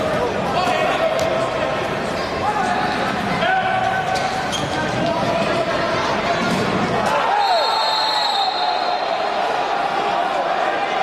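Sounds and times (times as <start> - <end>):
crowd voices and noise: 0.0 - 11.0
referee's whistle: 7.3 - 9.2.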